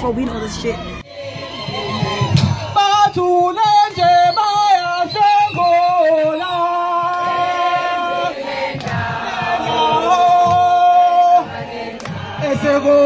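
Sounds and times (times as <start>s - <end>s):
pulsing low beat: 0.0s - 13.0s
group of voices singing: 1.0s - 13.0s.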